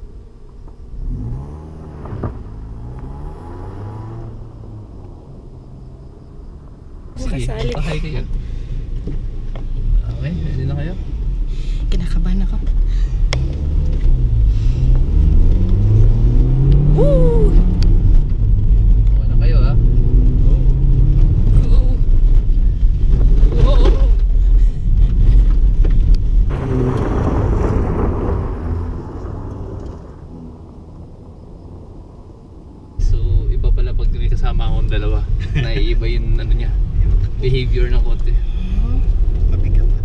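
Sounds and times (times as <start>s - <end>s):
car engine revving: 0.7s - 40.0s
voices: 7.2s - 8.3s
loud rush of noise: 26.5s - 30.4s.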